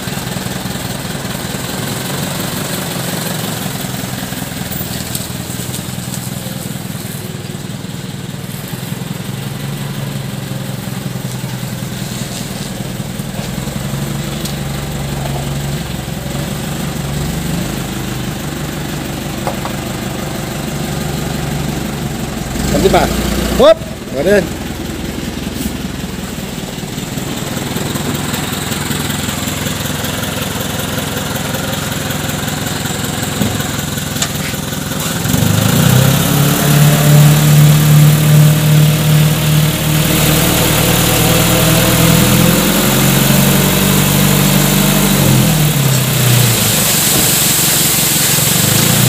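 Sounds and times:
truck engine idling and revving: 0.0s - 49.0s.

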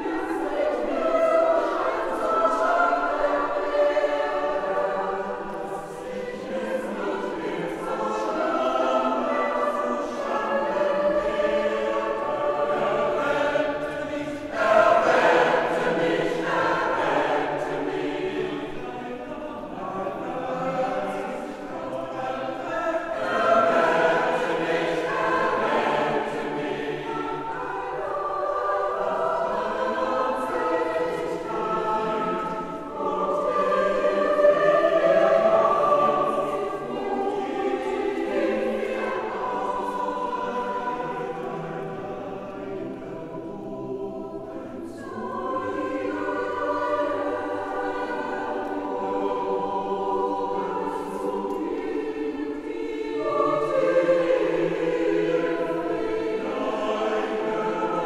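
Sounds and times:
mixed choir singing a cappella: 0.0s - 58.0s.

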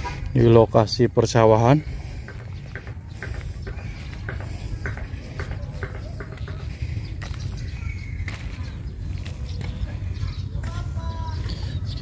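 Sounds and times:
footsteps on gravelly soil: 1.6s - 11.8s.

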